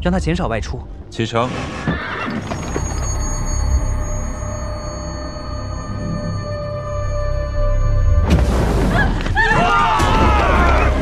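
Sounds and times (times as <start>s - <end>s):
sustained music tones: 0.5s - 9.3s
horse whinnying: 1.5s - 3.4s.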